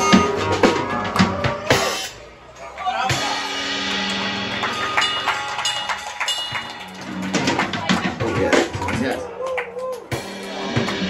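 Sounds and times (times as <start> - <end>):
band playing guitar and drums: 0.0 - 2.2, 3.0 - 9.3, 10.0 - 11.0.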